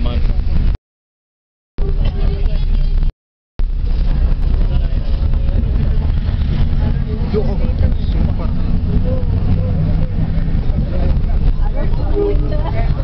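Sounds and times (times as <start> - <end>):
vehicle engine and road rumble: 0.0 - 0.8, 1.8 - 13.0
faint voices: 4.2 - 13.0.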